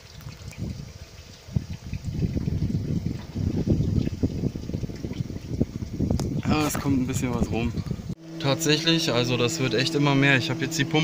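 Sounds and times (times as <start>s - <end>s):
wind buffeting microphone: 0.0s - 8.2s.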